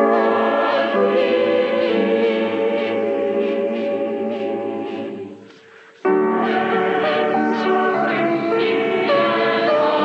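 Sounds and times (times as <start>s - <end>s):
youth choir singing: 0.0s - 10.0s.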